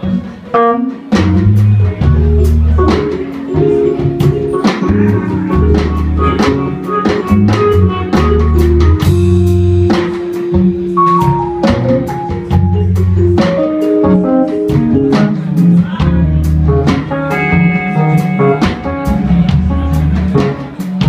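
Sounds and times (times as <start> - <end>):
drum kit beat: 0.0 - 21.0
electric bass notes: 0.0 - 21.0
electric guitar: 0.0 - 21.0
keyboard: 0.0 - 21.0.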